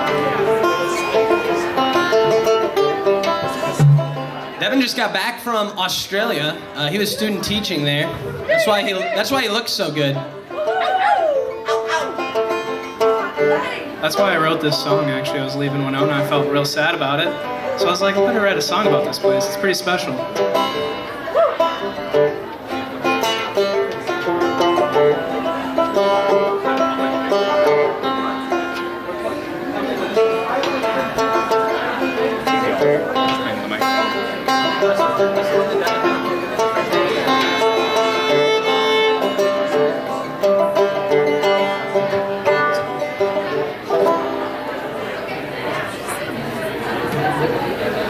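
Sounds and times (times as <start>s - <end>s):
fiddle: 0.0s - 46.4s
acoustic guitar: 0.0s - 48.0s
banjo: 0.0s - 48.0s.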